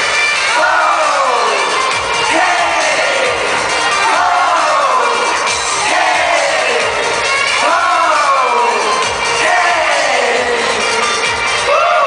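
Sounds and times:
crowd cheering: 0.0 - 12.0
live pop music: 0.0 - 12.0.

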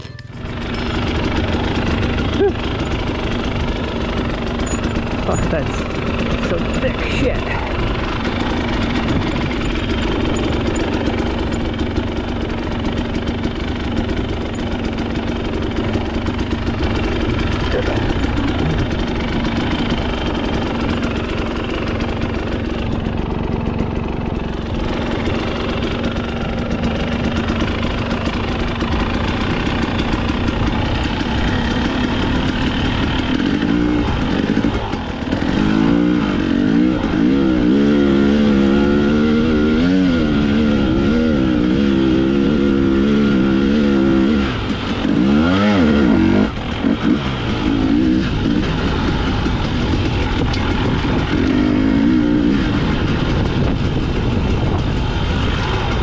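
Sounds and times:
dirt bike engine revving: 0.4 - 56.0.

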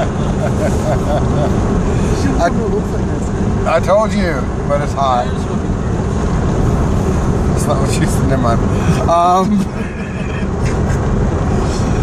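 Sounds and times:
car cabin road rumble: 0.0 - 12.0.

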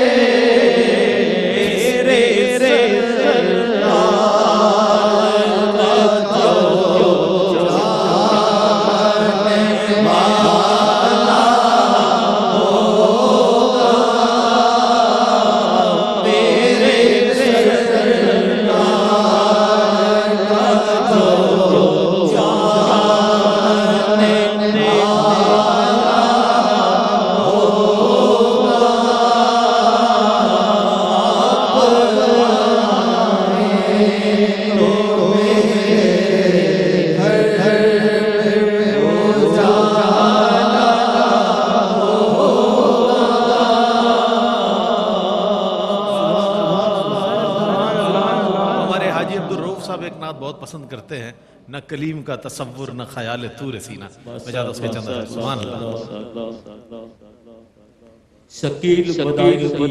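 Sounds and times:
men singing devotional song: 0.0 - 57.7, 58.5 - 59.9.

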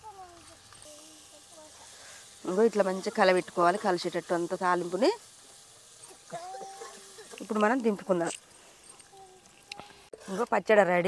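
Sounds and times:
woman speaking: 7.4 - 8.4, 10.3 - 11.0.

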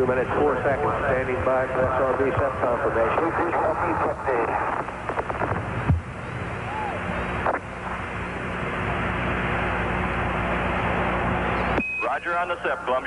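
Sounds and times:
voice on radio: 0.0 - 5.0, 12.0 - 13.0
radio hiss with low hum: 0.0 - 13.0.

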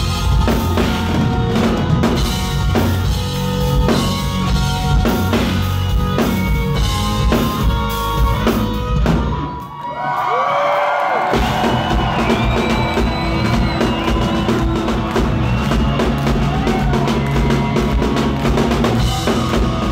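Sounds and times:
live metal band playing: 0.0 - 9.7, 11.3 - 19.9.

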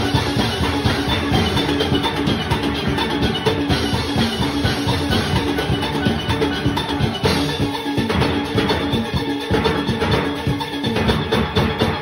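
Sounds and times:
drum and percussion beat: 0.0 - 12.0
steel pans playing: 0.0 - 12.0.

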